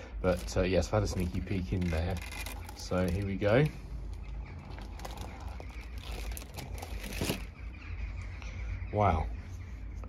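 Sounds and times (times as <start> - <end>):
cardboard rustling and scraping: 0.2 - 3.7, 4.5 - 7.6.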